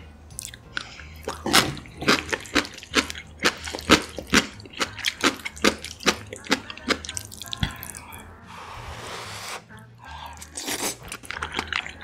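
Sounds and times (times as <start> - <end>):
soft background music: 0.0 - 12.0
wet mouth eating sounds: 0.3 - 8.2, 10.2 - 12.0
noodles slurped: 0.4 - 8.0, 10.4 - 12.0.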